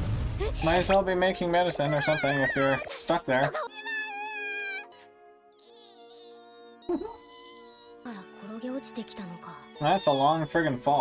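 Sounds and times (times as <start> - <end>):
cartoon wail of panic: 1.7 - 5.1.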